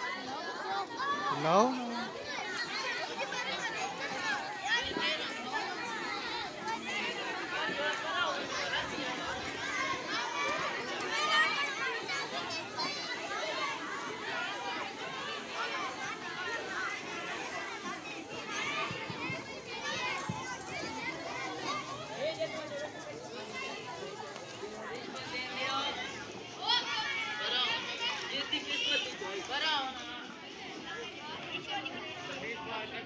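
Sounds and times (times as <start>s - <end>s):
children chattering and calling out: 0.0s - 33.0s.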